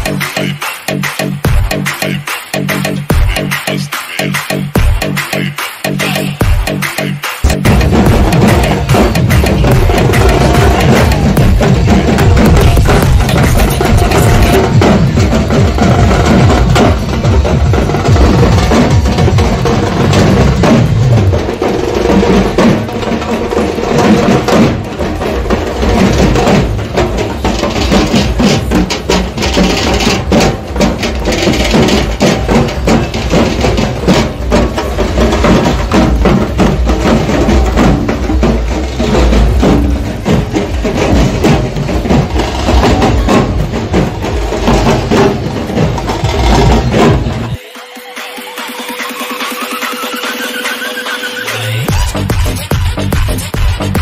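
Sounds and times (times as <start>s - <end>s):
snare drum beaten with sticks: 0.0s - 52.2s
dhol drums beating: 0.0s - 54.0s.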